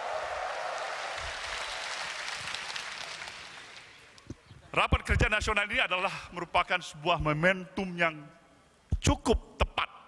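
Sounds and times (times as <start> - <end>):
large crowd applauding in a hall: 0.0 - 4.2.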